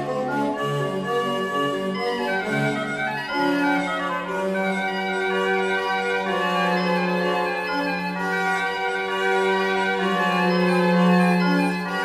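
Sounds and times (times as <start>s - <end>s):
orchestral strings playing: 0.0s - 12.0s.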